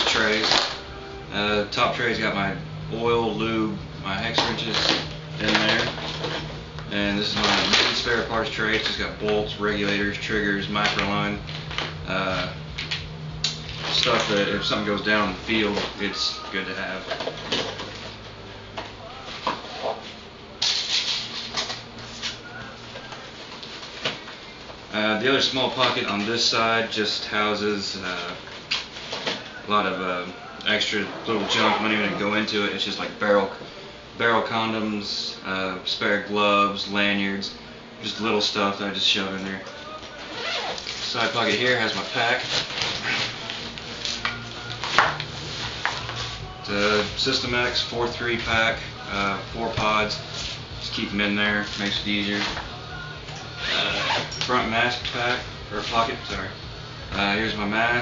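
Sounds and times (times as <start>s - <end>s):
rustling fabric and plastic: 4.2s - 18.4s, 39.5s - 56.5s
bag rustling and scraping: 30.8s - 32.5s, 40.1s - 47.3s.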